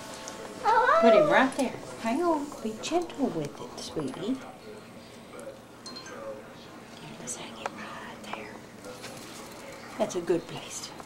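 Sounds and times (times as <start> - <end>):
soft whispering: 6.6 - 8.7.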